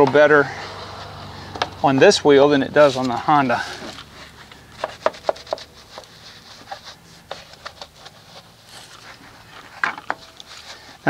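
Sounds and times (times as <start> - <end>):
brush rubbing wet wheel: 0.4 - 11.0.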